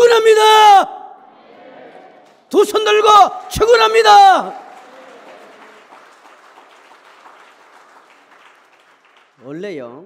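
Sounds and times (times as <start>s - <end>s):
congregation applauding: 2.2s - 10.0s.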